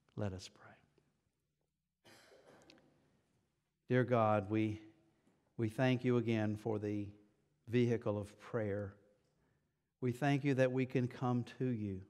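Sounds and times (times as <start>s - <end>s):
man speaking: 0.1s - 0.8s, 3.9s - 5.0s, 5.6s - 9.0s, 10.0s - 12.0s.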